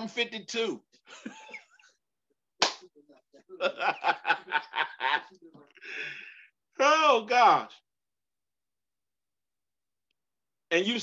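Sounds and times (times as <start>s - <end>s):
man laughing: 1.1s - 1.9s, 3.6s - 5.3s
hand slap: 2.6s - 2.8s.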